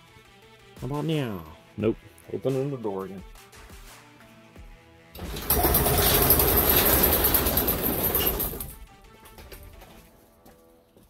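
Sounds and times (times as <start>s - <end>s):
garage door rattling open: 5.2s - 9.9s.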